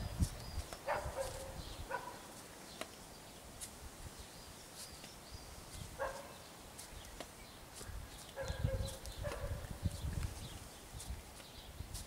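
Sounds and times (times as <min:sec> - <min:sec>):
bird calls and chirps: 0:00.0 - 0:03.5, 0:04.1 - 0:12.0
footsteps: 0:00.0 - 0:03.9.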